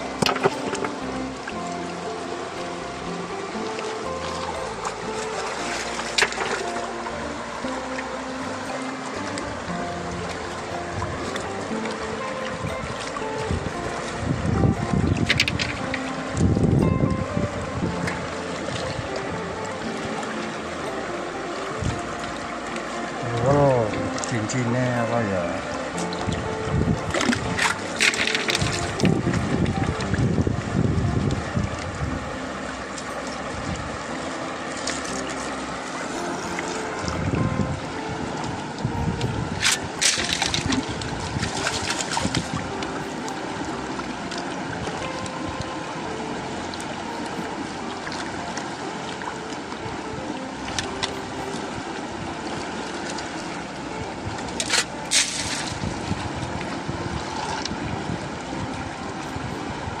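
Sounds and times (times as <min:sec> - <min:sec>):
music playing: 0:00.0 - 1:00.0
water swirling and splashing: 0:00.0 - 1:00.0.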